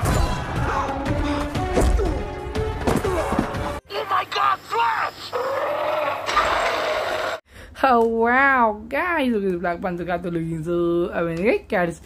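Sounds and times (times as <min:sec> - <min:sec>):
man exclaiming: 0:03.9 - 0:05.8
person shouting: 0:03.9 - 0:05.8.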